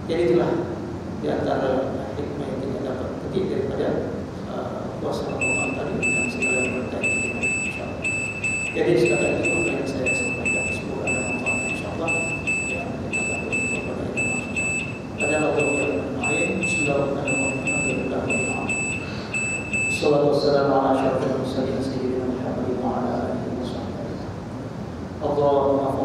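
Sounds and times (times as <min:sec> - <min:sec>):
man speaking: 0:00.0 - 0:14.6, 0:15.2 - 0:24.3, 0:25.2 - 0:26.0
high-pitched electronic beeps: 0:05.2 - 0:20.1.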